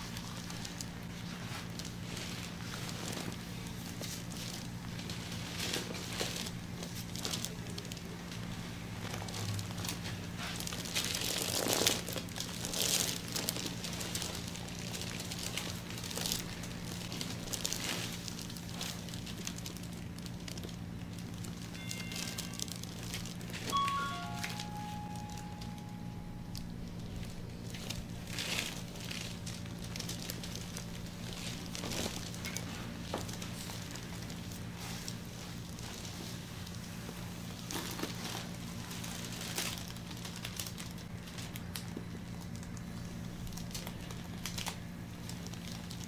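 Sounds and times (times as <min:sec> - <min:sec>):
steady low hum: 0:00.0 - 0:46.0
high notes: 0:23.6 - 0:26.7.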